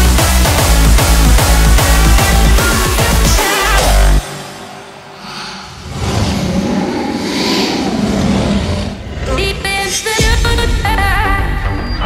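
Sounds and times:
hardstyle dance music: 0:00.0 - 0:05.1.

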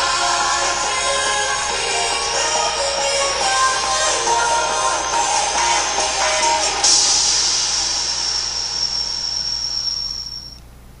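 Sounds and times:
cymbal crash ringing: 0:00.0 - 0:10.6.

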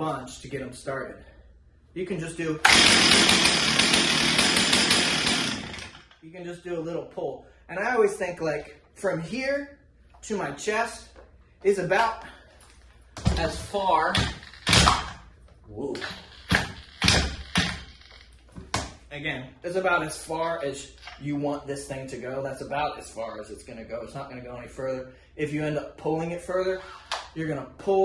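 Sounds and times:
chainsaw engine running: 0:02.6 - 0:06.1.

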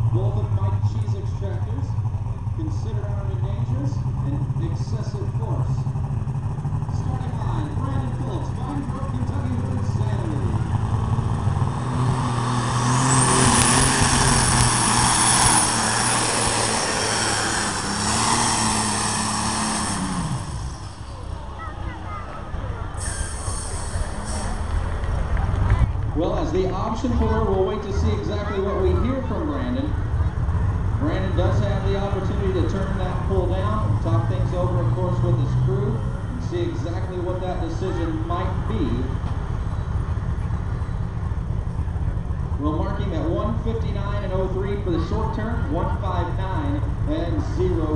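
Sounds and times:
tractor engine running hard: 0:00.0 - 0:47.9.

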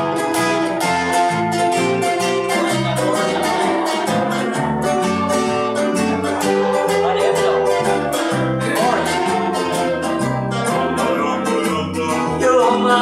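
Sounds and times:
electric guitar lead: 0:00.0 - 0:13.0
strummed rhythm guitar: 0:00.0 - 0:13.0
walking bass guitar: 0:00.0 - 0:13.0
lead vocal: 0:06.4 - 0:09.8, 0:10.8 - 0:13.0.

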